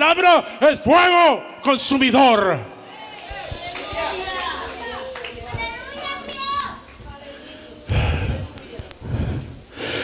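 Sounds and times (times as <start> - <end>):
congregation calling out: 0.0 - 7.8.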